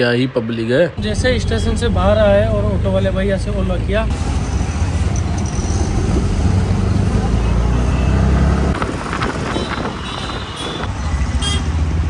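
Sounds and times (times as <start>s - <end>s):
street traffic: 0.0s - 12.0s
rickshaw engine rumble: 1.0s - 12.0s.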